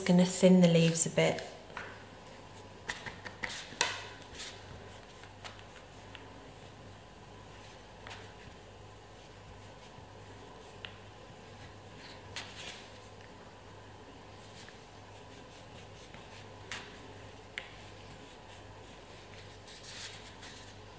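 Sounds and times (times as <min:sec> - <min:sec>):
low steady hum: 0:00.0 - 0:20.9.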